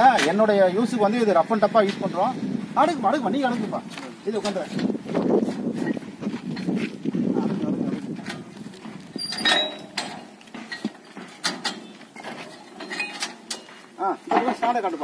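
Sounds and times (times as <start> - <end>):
men's voices talking: 0.0 - 9.9, 13.4 - 15.0
metallic clinks and knocks: 9.1 - 14.8.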